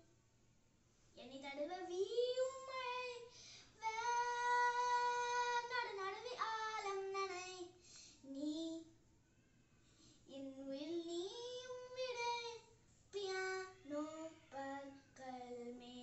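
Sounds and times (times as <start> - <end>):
girl singing unaccompanied: 1.2 - 9.0, 10.2 - 16.0.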